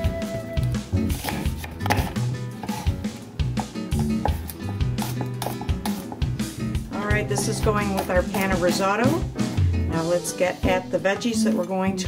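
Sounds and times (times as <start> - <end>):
background music with bass line: 0.0 - 12.0
knife chopping on wooden board: 1.1 - 3.0, 3.6 - 6.4, 7.0 - 9.2.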